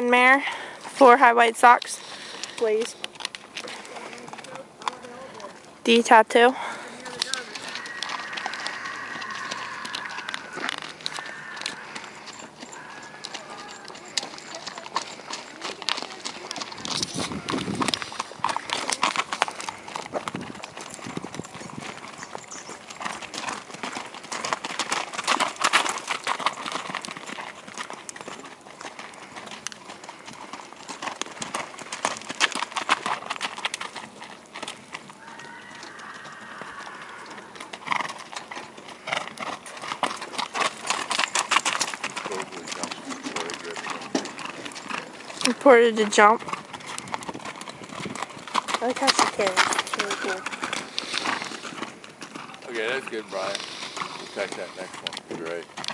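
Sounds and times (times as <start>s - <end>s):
horse hoofbeats on gravel: 0.0s - 55.9s.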